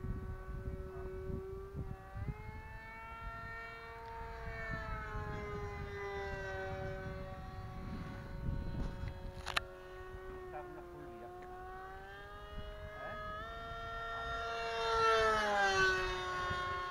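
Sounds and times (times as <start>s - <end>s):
model plane motor whining: 0.0s - 16.9s
wind buffeting microphone: 0.0s - 16.9s.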